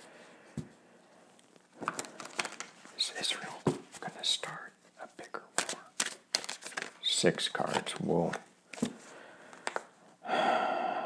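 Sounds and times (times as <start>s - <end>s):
cards clicking and rustling: 1.8s - 3.8s, 5.5s - 9.9s
man whispering: 2.9s - 5.6s.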